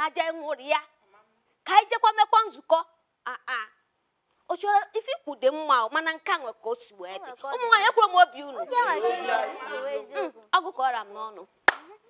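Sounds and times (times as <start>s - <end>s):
woman speaking: 4.5s - 9.3s, 10.2s - 11.5s
sharp hand clap: 11.7s - 12.0s.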